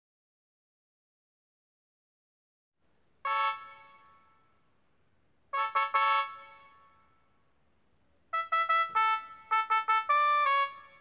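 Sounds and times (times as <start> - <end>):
synthesized trumpet notes: 3.2 - 4.5, 5.5 - 7.2, 8.3 - 11.0.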